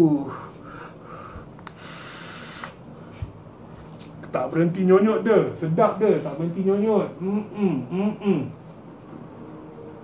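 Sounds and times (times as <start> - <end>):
soft hiss of exhaled breath: 0.7 - 2.8.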